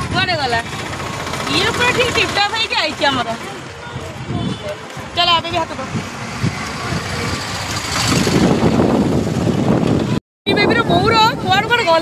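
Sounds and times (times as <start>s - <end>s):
motor vehicle running: 0.0s - 10.2s.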